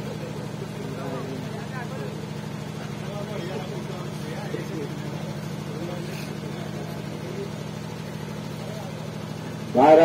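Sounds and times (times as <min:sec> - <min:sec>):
faint voices talking: 0:00.0 - 0:10.0
low engine-like hum: 0:00.0 - 0:10.0.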